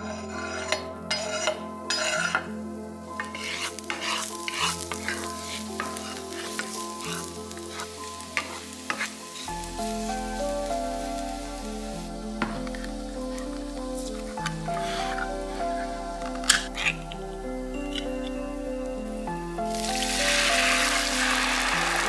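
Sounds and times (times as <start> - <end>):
wooden spoon stirring: 0.0 - 17.3
garlic sizzling in hot oil: 3.1 - 15.2, 19.7 - 22.0
scrapes and clatters on cutting board: 3.2 - 5.2.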